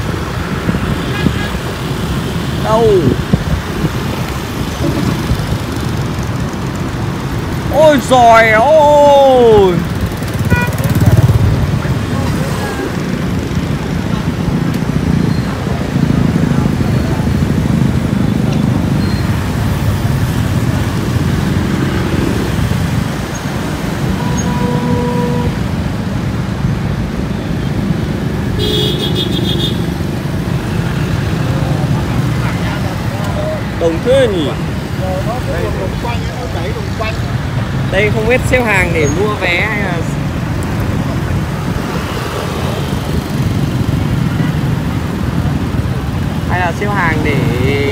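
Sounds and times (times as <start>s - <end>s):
motorbikes running nearby: 0.0s - 47.9s
scooter engine and road noise: 0.0s - 47.9s.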